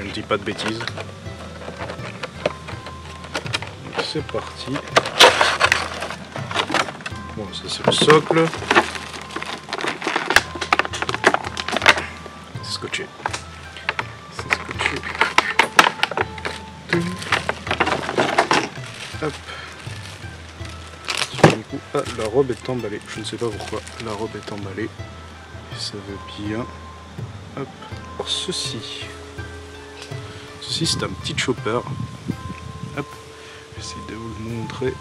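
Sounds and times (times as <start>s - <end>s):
plastic bag crinkling: 0.1s - 12.2s, 13.3s - 24.9s
cardboard box being opened: 7.9s - 12.0s, 15.0s - 24.6s.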